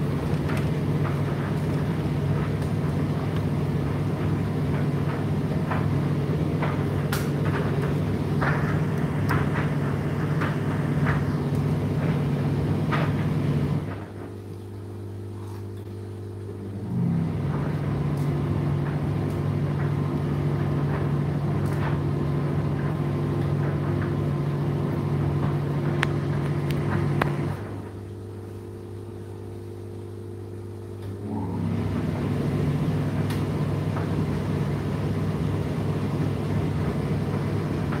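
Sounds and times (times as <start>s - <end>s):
tumble dryer motor hum: 0.0s - 38.0s.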